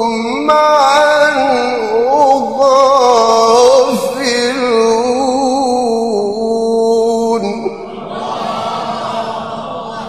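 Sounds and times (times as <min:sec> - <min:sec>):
man reciting in a long sung note: 0:00.0 - 0:08.2
crowd calling out together: 0:07.9 - 0:10.0.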